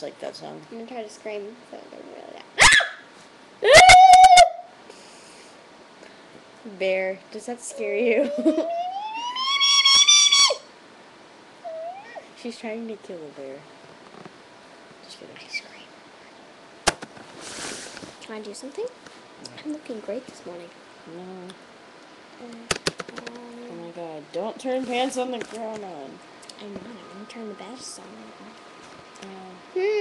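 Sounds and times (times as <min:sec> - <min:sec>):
girl screaming: 0:03.6 - 0:04.6, 0:08.5 - 0:10.7.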